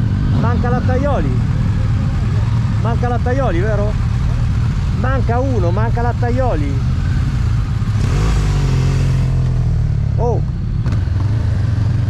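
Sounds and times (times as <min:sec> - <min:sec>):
motorcycle engine revving: 0:00.0 - 0:12.0
motorcycle engines idling: 0:00.0 - 0:12.0.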